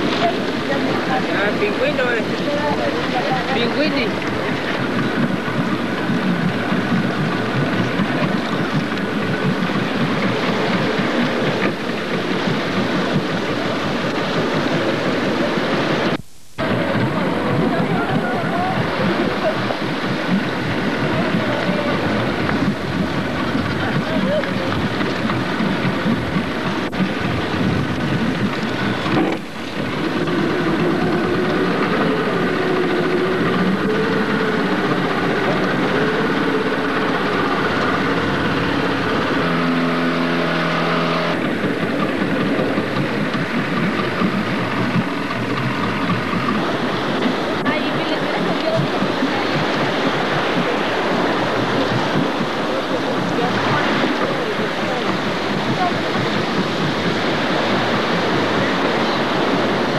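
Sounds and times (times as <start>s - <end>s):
boat motor running: 0.0s - 59.9s
wind noise on microphone: 0.0s - 59.9s
short pitched sound: 36.8s - 41.7s.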